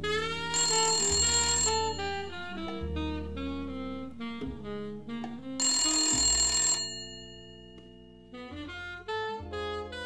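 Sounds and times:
slow jazz with saxophone: 0.0 - 0.6, 2.3 - 5.6, 8.4 - 10.0
telephone bell ringing: 0.4 - 2.8, 5.6 - 8.0.

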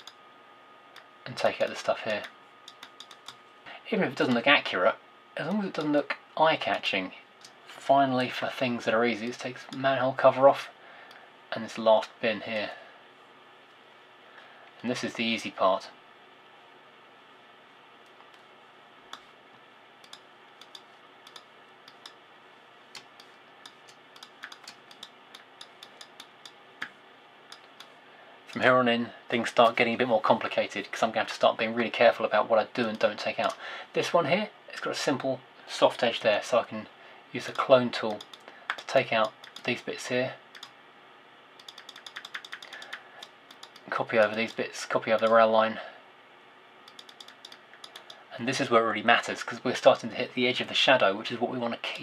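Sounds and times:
computer mouse clicking: 0.0 - 0.2, 1.0 - 3.4, 20.0 - 22.2, 22.9 - 28.6, 37.5 - 39.8, 40.5 - 40.8, 41.6 - 45.4, 46.8 - 48.2
faint room hiss: 0.0 - 52.0.

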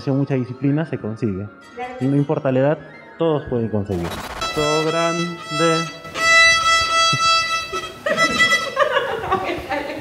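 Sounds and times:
violin bowing: 1.5 - 3.7, 4.3 - 8.9
people laughing: 7.7 - 10.0.

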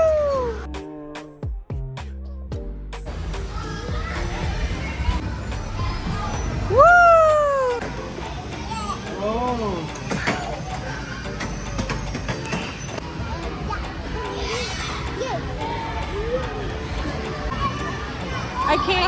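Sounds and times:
child crying out: 0.0 - 0.8
background music: 0.0 - 19.0
children playing: 3.2 - 19.0.

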